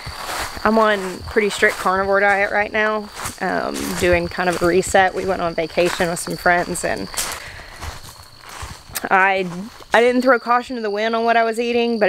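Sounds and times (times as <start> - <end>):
footfalls on soil: 0.0 - 10.2
insect trill: 0.0 - 12.0.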